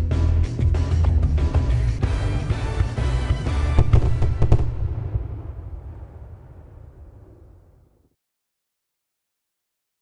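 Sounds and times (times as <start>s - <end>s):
music: 0.0s - 4.9s
low rumble of bursts: 1.0s - 8.1s
fireworks bangs: 3.2s - 7.8s.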